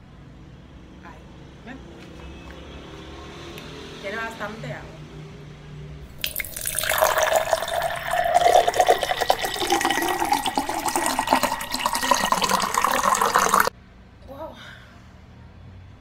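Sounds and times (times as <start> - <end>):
water sloshing in metal mug: 6.1 - 13.7.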